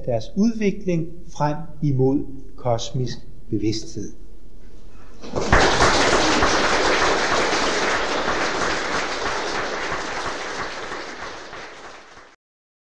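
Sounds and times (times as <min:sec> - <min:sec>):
audience applause: 0:05.2 - 0:12.4.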